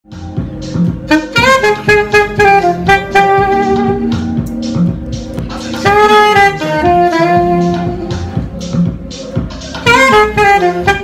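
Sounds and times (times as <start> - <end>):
backing track with steady beat: 0.0 - 11.0
saxophone melody: 0.1 - 11.0.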